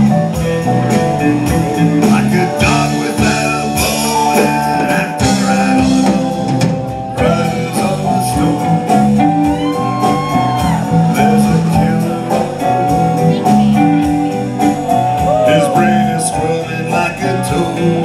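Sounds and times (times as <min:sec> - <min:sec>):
drums: 0:00.0 - 0:18.0
electric guitar: 0:00.0 - 0:18.0
man singing through speakers: 0:01.5 - 0:14.0, 0:15.0 - 0:18.0.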